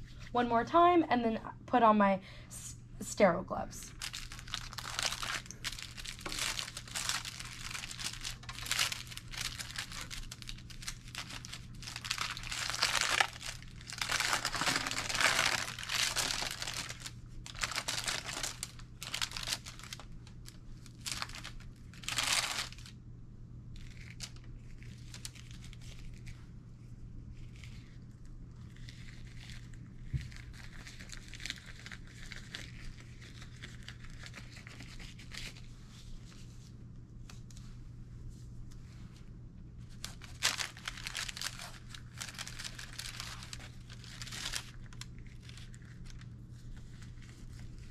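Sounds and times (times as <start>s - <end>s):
paper wrapper crinkling: 3.9s - 23.0s, 23.7s - 26.4s, 27.3s - 36.4s, 39.9s - 47.9s.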